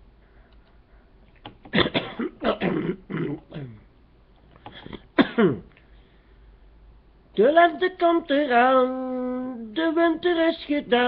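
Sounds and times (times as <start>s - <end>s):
man making wordless vocal noises: 2.9s - 3.9s.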